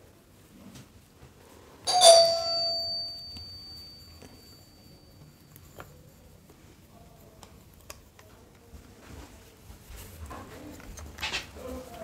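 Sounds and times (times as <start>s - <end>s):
two-note doorbell chime: 1.9s - 5.2s.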